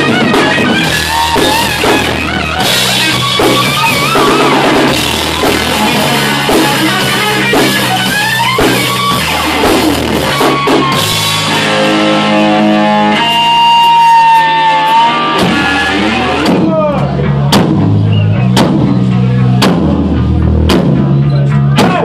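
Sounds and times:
heavy drum hits: 0.0s - 11.7s, 15.4s - 21.1s
electric guitar sustained notes: 0.0s - 17.5s
bass guitar: 0.0s - 22.0s.

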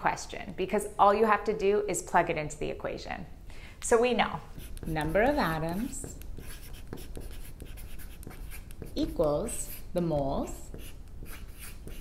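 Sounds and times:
chalk scratching on blackboard: 4.4s - 12.0s.

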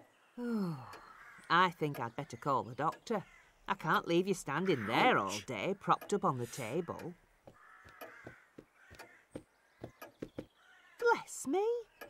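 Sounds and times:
faint crow cawing: 0.8s - 1.6s, 3.2s - 3.7s, 6.6s - 11.2s
quiet footsteps: 6.6s - 10.6s.

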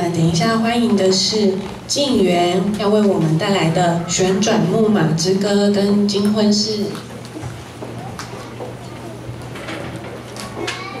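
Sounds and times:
audience voices and rustle: 6.7s - 11.0s.

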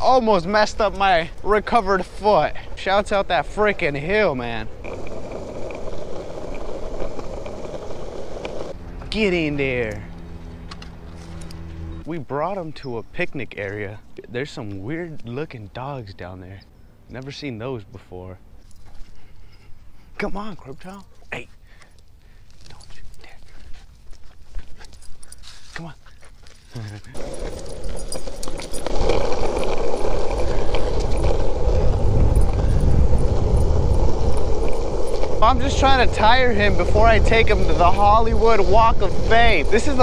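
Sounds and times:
skateboard wheels rolling on asphalt: 0.0s - 16.4s, 26.4s - 40.0s.

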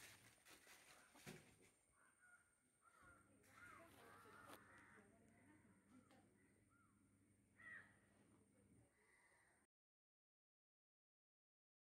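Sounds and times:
faint bird calls: 1.9s - 8.2s, 8.9s - 9.7s.

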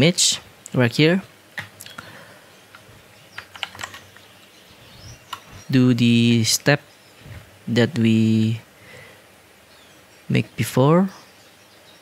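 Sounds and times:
computer keyboard key clicks: 3.4s - 4.0s.

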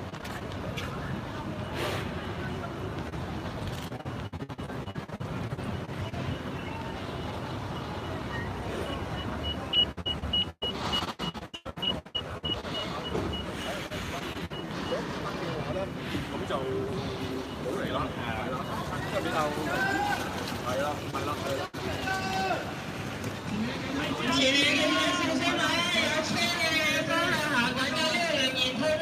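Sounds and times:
crowd voices: 0.0s - 10.9s, 11.6s - 29.0s
vehicle traffic: 0.0s - 29.0s
high electronic beeps: 4.0s - 19.5s.

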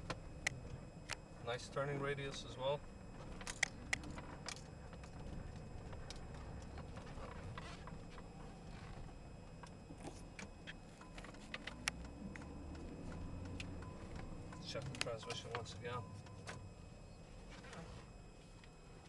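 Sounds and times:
engine and road rumble: 0.0s - 19.0s.

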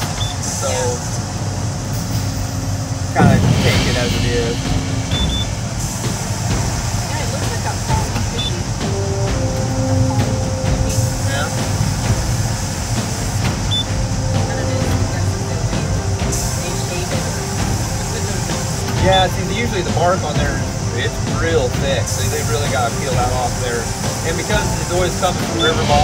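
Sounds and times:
heavy machinery rumble: 0.0s - 26.0s
high hiss: 0.0s - 26.0s.

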